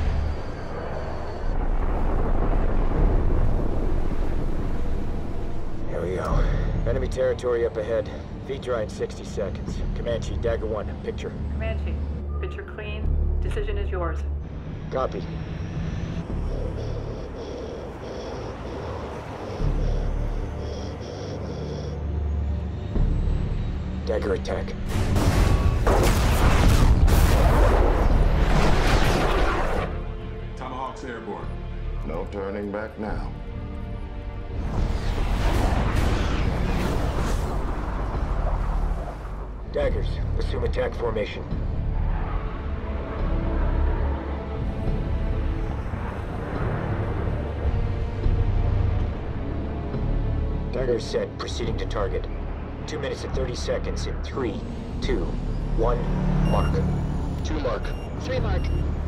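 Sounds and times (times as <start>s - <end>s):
missile launch blasts: 24.9s - 30.0s, 34.8s - 38.9s.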